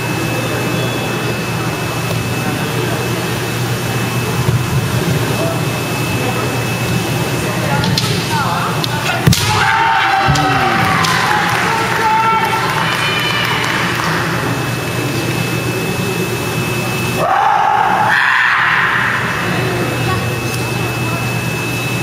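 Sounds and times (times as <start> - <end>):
steady low hum: 0.0 - 22.0
echoing kiai shouts: 9.0 - 13.9, 17.2 - 19.3.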